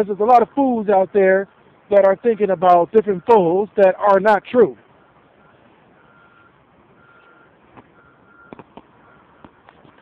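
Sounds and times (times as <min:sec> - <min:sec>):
vehicle reversing alarm beeping: 0:01.9 - 0:09.7.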